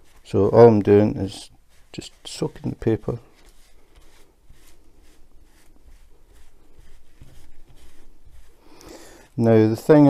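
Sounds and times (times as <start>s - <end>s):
wet wipe rubbing paper: 0.0s - 9.0s.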